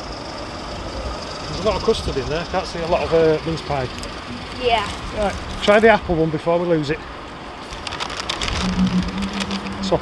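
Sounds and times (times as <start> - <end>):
cardboard sleeve crackling: 7.7 - 9.6
steady low hum: 8.5 - 10.0.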